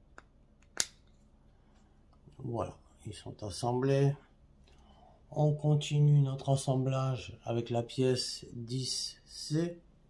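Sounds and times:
plastic parts snapping together: 0:00.2 - 0:01.1.

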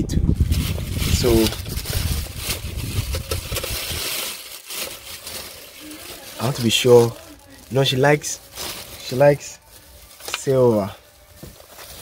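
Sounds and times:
low rumble: 0:00.0 - 0:04.0
plastic bag rustling: 0:00.4 - 0:12.0.

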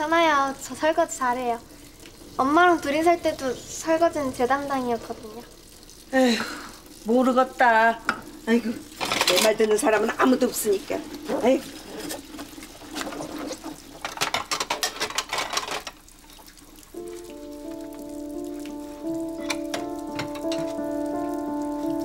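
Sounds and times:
running water in sink: 0:00.0 - 0:22.0
soft background music: 0:16.9 - 0:22.0
dishes clinking: 0:19.4 - 0:20.8.

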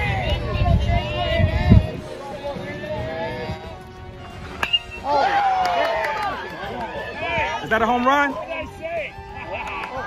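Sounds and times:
spectators yelling and cheering: 0:00.0 - 0:03.6, 0:04.6 - 0:10.0
metal bat hitting ball: 0:04.6 - 0:05.1.

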